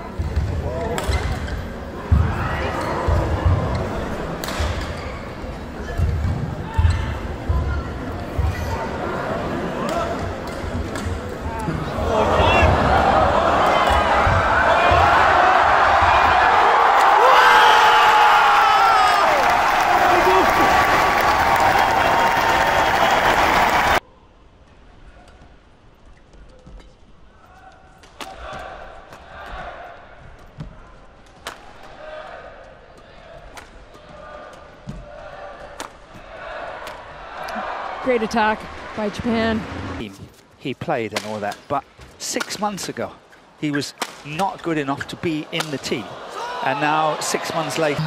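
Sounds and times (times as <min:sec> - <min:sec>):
crowd noise in arena: 0:00.0 - 0:48.0.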